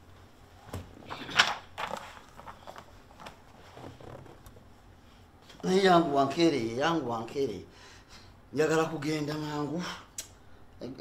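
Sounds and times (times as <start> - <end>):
armchair creaking: 1.1 - 4.7.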